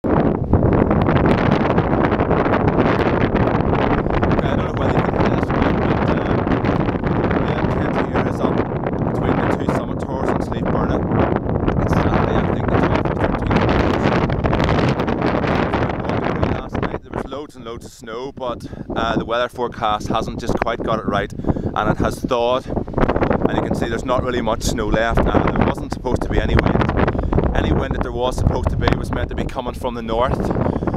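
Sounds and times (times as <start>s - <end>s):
gusting wind buffeting microphone: 0.0s - 30.9s.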